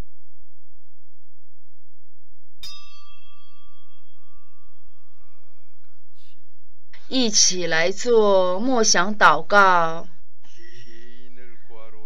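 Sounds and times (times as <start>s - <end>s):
low electrical hum: 2.6s - 12.0s.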